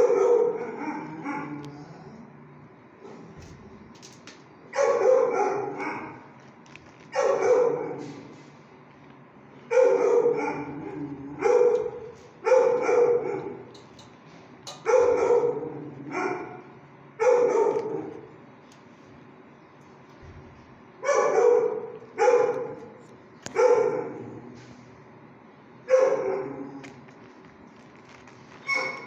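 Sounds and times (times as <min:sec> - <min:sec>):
dog barking: 0:00.0 - 0:01.6, 0:04.7 - 0:06.3, 0:07.2 - 0:08.0, 0:09.7 - 0:13.6, 0:14.8 - 0:16.6, 0:17.2 - 0:18.0, 0:21.0 - 0:22.9, 0:23.5 - 0:24.2, 0:25.9 - 0:26.5, 0:28.6 - 0:29.0.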